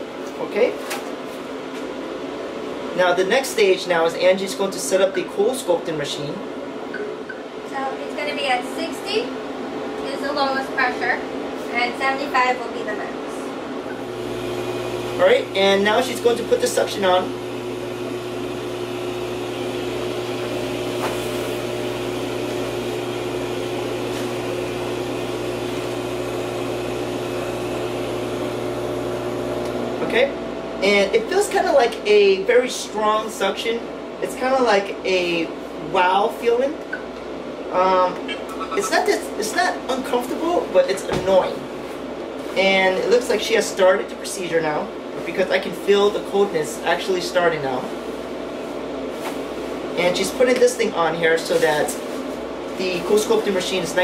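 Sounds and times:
room noise hum and hiss: 0.0 - 54.0
machine humming and whirring: 13.6 - 36.1.

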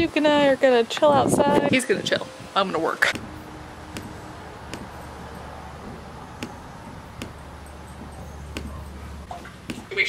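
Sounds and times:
steady low hum: 3.1 - 10.0.

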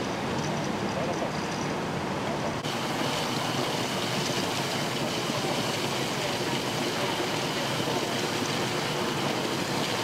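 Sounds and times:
water gushing from hydrant: 2.6 - 10.0.

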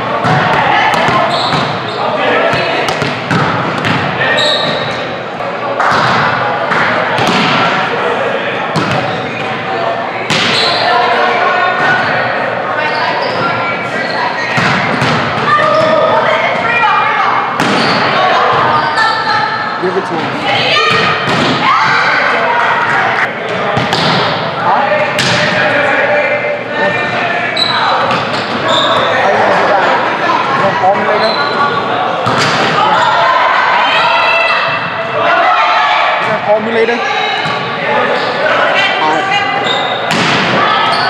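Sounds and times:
volleyball thuds in echoing gym: 0.0 - 5.1, 5.7 - 12.3, 14.4 - 25.9, 27.6 - 29.6, 30.2 - 33.2, 39.9 - 41.0.

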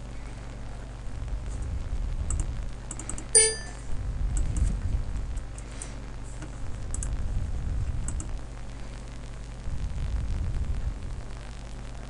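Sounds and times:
steady low hum: 0.0 - 12.0
computer mouse clicks: 2.3 - 3.3, 8.1 - 8.3
short pitched tone: 3.4 - 3.8.

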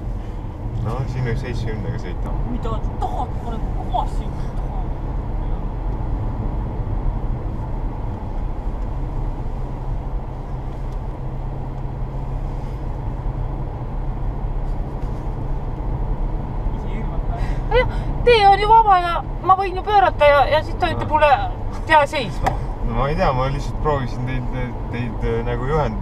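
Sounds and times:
car engine drone: 0.0 - 26.0
tyres on road: 0.0 - 26.0.

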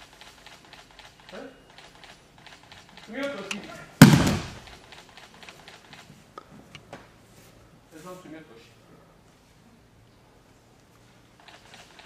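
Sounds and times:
body thudding on mat: 4.0 - 4.6.

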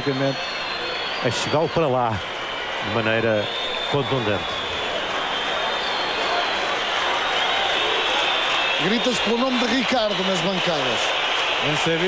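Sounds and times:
crowd roar: 0.0 - 12.0
stadium crowd chanting and shouting: 0.0 - 12.0.

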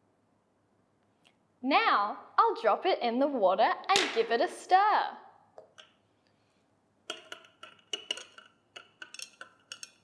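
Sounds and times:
metal rod clinking on glass: 7.1 - 10.0.

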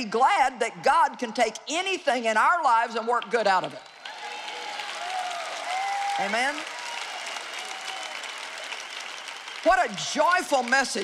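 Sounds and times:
large audience applauding: 3.8 - 11.0.

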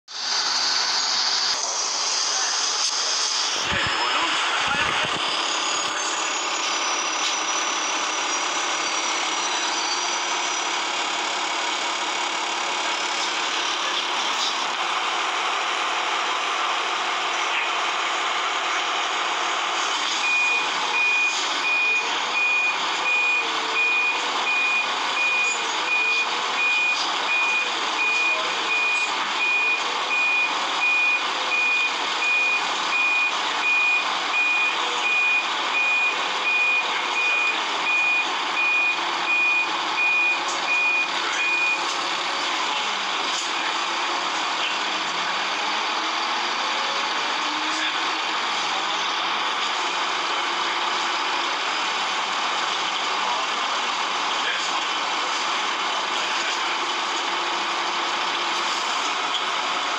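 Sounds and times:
bus engine running: 0.1 - 59.9
bus reversing alarm beeping: 0.2 - 54.6.

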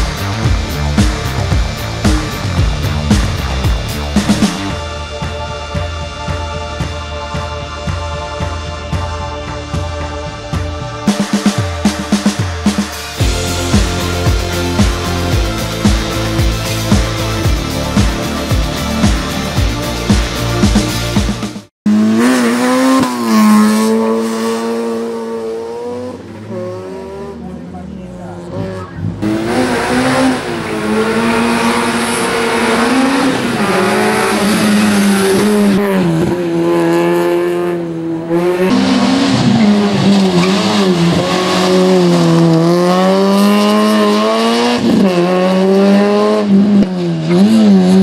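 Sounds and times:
rally car engine revving hard: 21.9 - 48.0.

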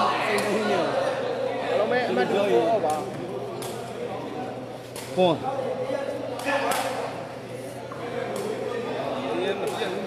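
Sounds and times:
murmur of crowd chatter: 0.0 - 10.0.

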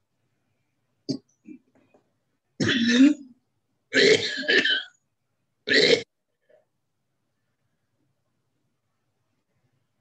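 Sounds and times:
man coughing and clearing throat: 2.6 - 3.2.

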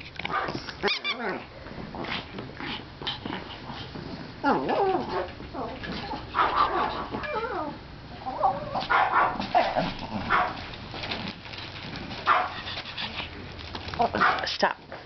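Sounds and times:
small dogs yipping and whining: 0.3 - 1.4, 4.5 - 10.6.

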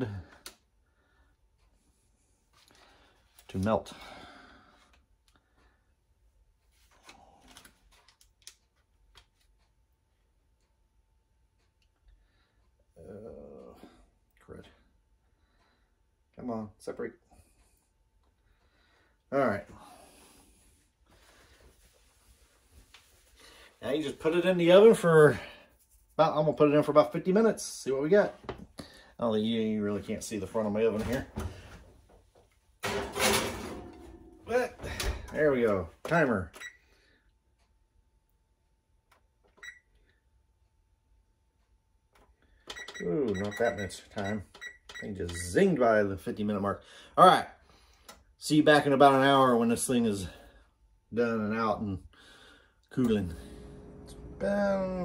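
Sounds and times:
oven door shutting: 32.8 - 35.4.

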